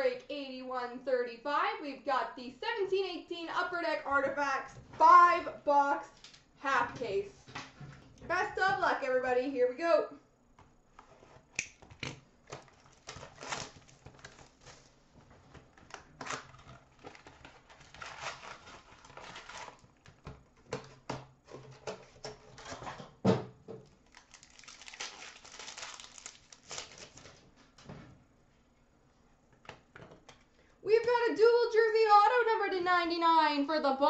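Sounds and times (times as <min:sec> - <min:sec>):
wrappers crinkling and tearing: 0:12.4 - 0:20.2, 0:23.9 - 0:27.5.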